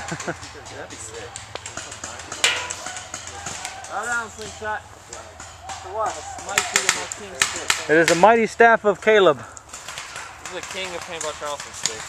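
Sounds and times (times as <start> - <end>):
voices: 0.0 - 12.0
taps and crunches on forest floor: 0.9 - 8.2, 9.5 - 12.0
sharp crack: 6.4 - 8.2.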